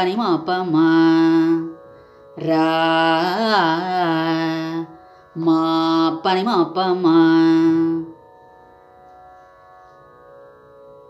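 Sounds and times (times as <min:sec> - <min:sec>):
soft steady drone: 0:00.0 - 0:11.0.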